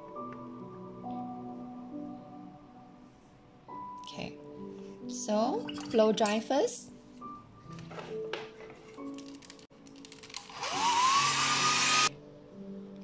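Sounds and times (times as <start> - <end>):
hair dryer whine: 10.5 - 12.1.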